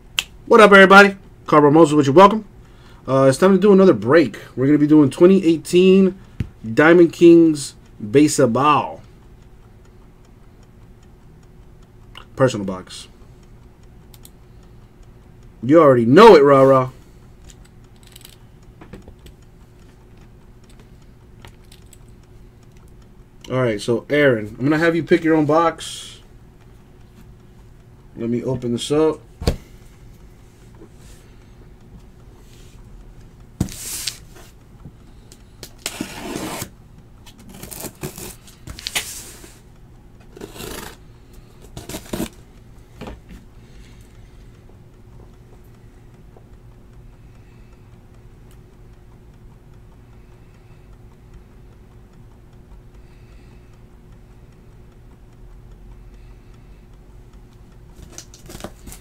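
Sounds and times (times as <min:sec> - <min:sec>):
low steady hum: 0:00.0 - 0:59.0.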